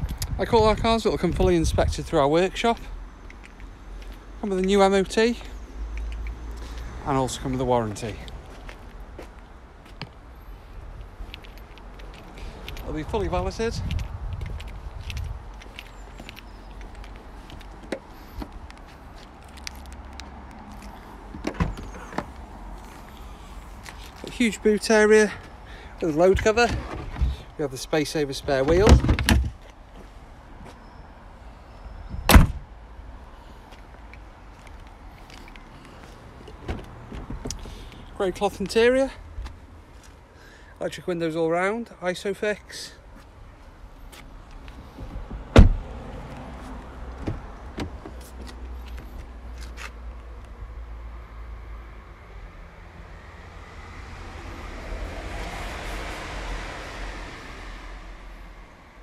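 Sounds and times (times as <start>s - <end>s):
road vehicle passing: 2.8s - 28.9s, 43.2s - 59.0s
car tailgate shutting: 32.3s - 32.6s, 45.4s - 45.9s.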